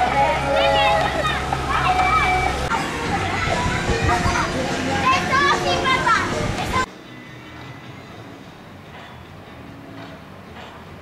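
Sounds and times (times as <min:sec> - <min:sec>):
children shouting and squealing: 0:00.0 - 0:06.9.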